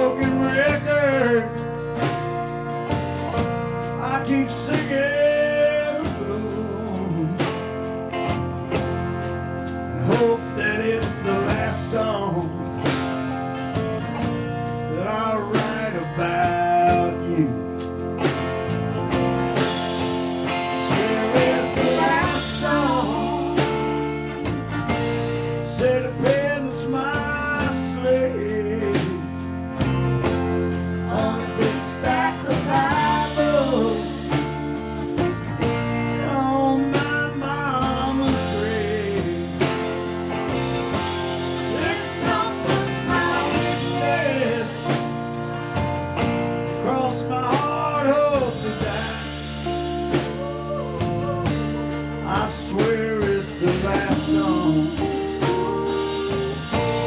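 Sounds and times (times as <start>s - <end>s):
electric guitar lead: 0.0s - 57.0s
live rock band playing: 0.0s - 57.0s.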